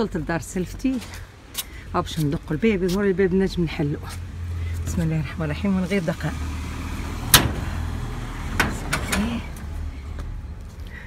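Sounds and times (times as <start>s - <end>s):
gate lock clicking: 7.3s - 7.8s, 8.5s - 9.3s
gate latch clicks: 8.5s - 9.3s.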